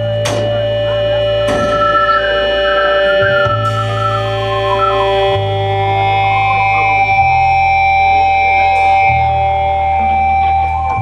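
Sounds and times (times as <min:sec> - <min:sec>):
bass guitar: 0:00.0 - 0:11.0
drums: 0:00.0 - 0:11.0
keyboards: 0:00.0 - 0:11.0
saxophone: 0:00.0 - 0:11.0.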